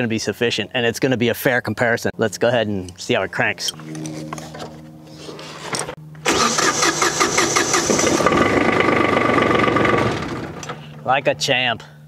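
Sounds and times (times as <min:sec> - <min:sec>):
electric starter cranking: 0:05.2 - 0:11.0
diesel tractor engine running: 0:05.8 - 0:11.0.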